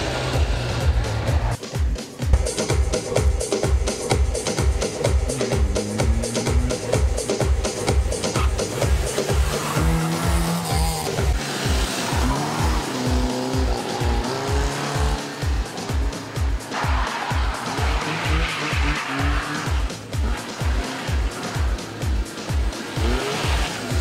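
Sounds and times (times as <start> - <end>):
car engine revving: 0.0 - 1.6, 2.7 - 24.0
music with steady beat: 0.0 - 24.0.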